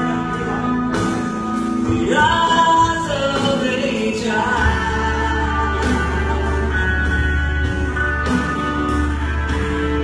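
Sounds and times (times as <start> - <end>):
guitar backing track: 0.0 - 10.0
man singing into a microphone: 1.8 - 7.2.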